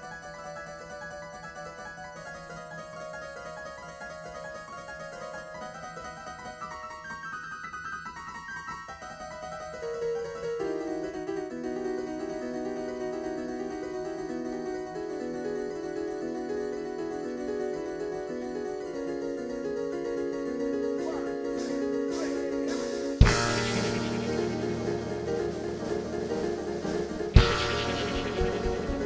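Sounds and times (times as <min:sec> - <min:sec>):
keyboard playing quick notes: 0:21.0 - 0:29.0.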